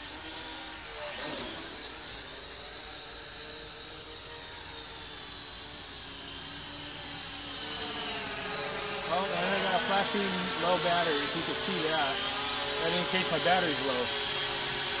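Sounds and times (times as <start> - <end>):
drone propellers whining: 0.0 - 15.0.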